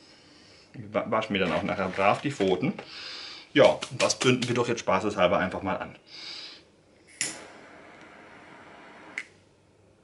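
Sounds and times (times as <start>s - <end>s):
lighter flame hissing: 7.0s - 9.4s.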